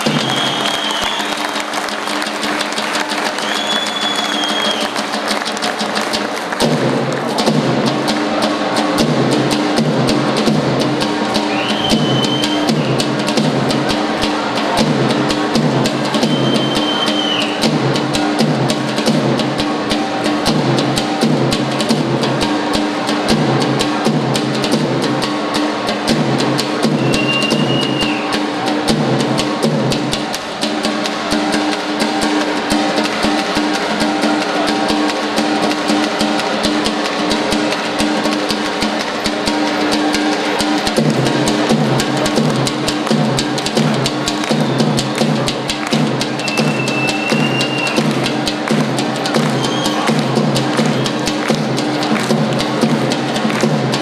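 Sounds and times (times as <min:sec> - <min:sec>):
fast driving drumming: 0:00.0 - 0:54.0
sustained folk dance melody: 0:00.0 - 0:54.0.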